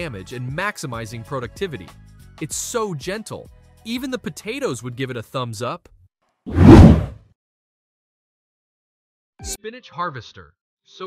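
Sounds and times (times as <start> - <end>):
whoosh transition effect: 6.5 - 7.2.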